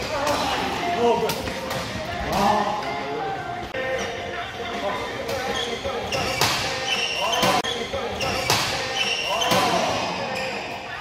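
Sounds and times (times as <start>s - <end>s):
shoes squeaking on court floor: 3.8s - 11.0s.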